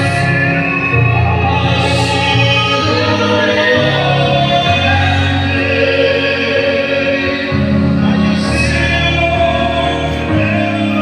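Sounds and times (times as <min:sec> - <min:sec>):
choir singing a slow song: 0:00.0 - 0:11.0
sustained bass notes: 0:00.0 - 0:11.0.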